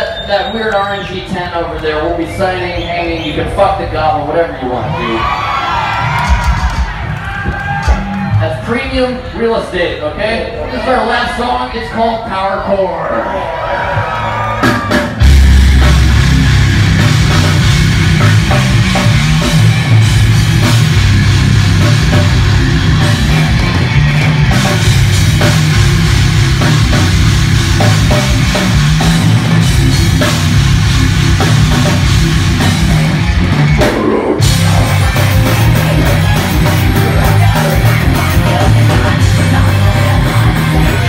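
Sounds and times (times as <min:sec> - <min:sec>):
live heavy metal band: 0:03.2 - 0:08.7, 0:13.1 - 0:41.0
drum hits: 0:06.2 - 0:08.4, 0:14.6 - 0:39.6.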